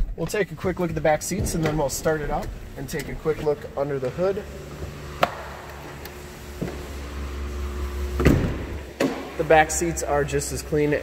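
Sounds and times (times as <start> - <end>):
low rumble of movement: 0.0 - 4.3.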